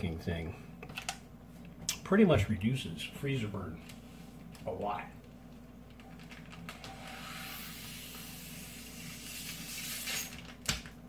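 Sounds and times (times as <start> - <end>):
air sucked through a straw: 6.9 - 10.3.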